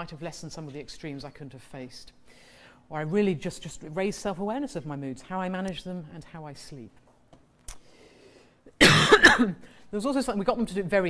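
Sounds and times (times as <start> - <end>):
loud cough: 8.8 - 9.6.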